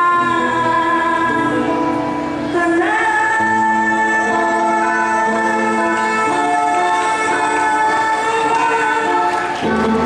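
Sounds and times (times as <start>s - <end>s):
backing music: 0.0s - 10.0s
woman singing into microphone: 0.0s - 10.0s.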